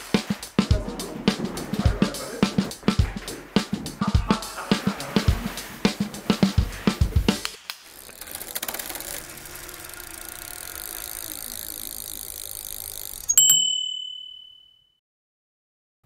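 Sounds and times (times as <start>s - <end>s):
bicycle freewheel ticking and whirring: 7.8s - 13.8s
bicycle bell ding: 13.2s - 15.0s.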